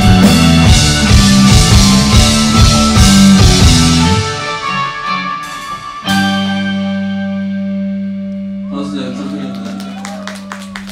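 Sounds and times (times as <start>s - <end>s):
electric guitars and bass chord ringing: 0.0s - 10.0s.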